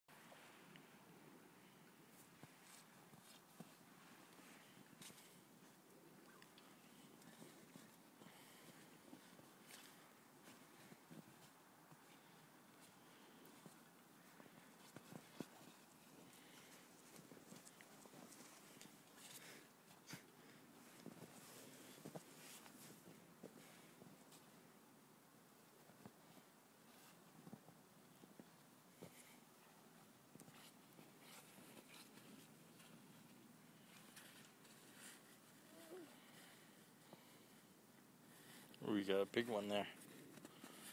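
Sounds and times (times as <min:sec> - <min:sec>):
crunches of packed snow: 0:00.2 - 0:24.8, 0:25.6 - 0:40.9.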